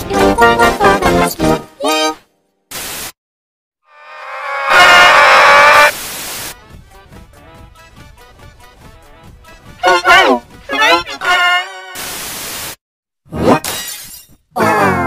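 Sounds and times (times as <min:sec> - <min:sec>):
tv static hiss: 0:02.7 - 0:03.2, 0:04.7 - 0:06.6, 0:12.0 - 0:12.8
loud held pitched tone: 0:03.9 - 0:06.0.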